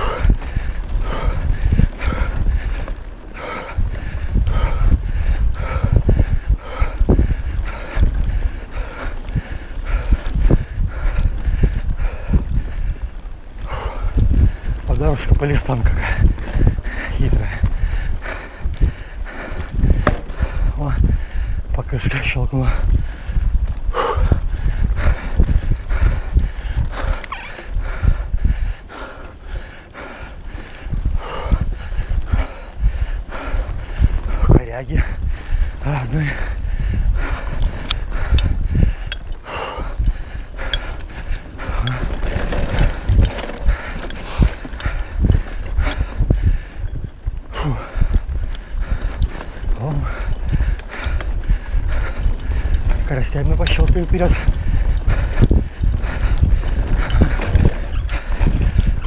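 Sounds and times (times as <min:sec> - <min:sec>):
bike rattling and knocking: 0:00.0 - 0:59.0
tyre noise on dirt: 0:00.0 - 0:59.0
wind rumble on microphone: 0:00.0 - 0:59.0.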